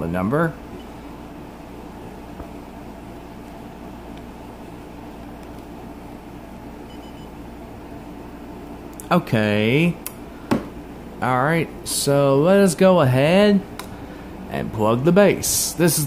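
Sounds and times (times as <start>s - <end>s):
low mechanical hum: 0.0s - 16.0s
faint high beep: 6.9s - 7.3s.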